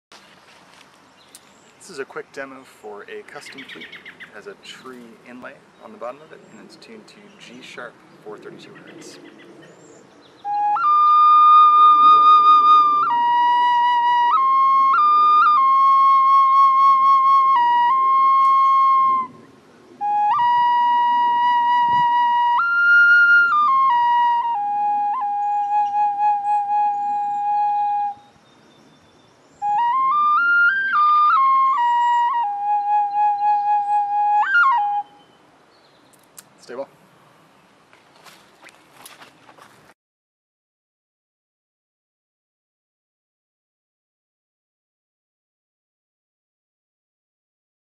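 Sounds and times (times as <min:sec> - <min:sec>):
wooden flute melody: 0:10.4 - 0:28.4, 0:29.6 - 0:35.4.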